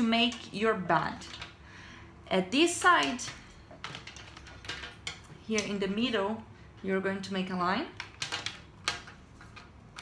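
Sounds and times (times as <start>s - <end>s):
colored pencils clicking: 3.0s - 5.8s, 7.9s - 10.0s.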